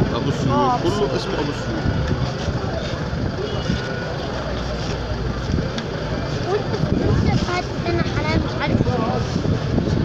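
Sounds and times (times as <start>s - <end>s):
people talking: 6.3s - 9.4s.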